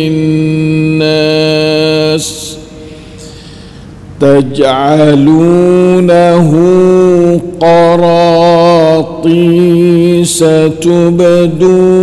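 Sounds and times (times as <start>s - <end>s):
man reciting in a drawn-out note: 0.0s - 3.4s, 4.2s - 12.0s.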